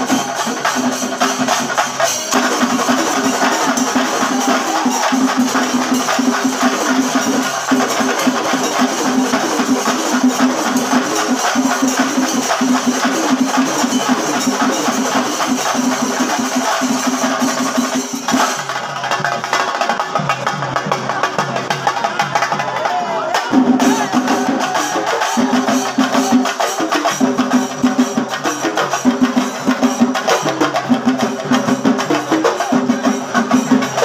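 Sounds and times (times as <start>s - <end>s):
cymbals: 0.0s - 34.0s
drums beaten fast: 0.0s - 34.0s.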